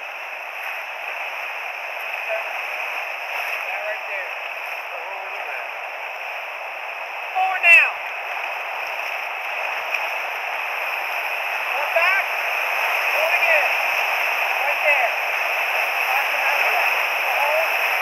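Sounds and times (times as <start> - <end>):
whitewater rapid roaring: 0.0 - 18.0.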